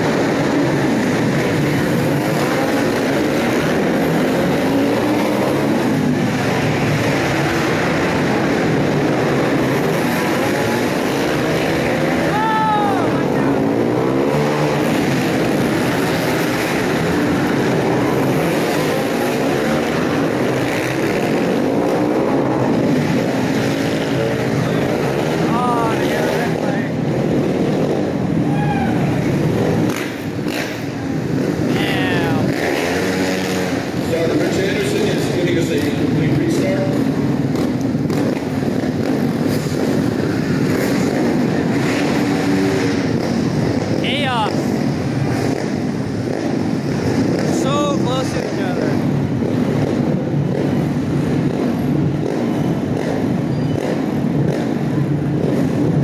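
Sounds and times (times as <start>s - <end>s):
motorcycle engines revving: 0.0s - 56.0s
motorcycles passing close: 0.0s - 56.0s.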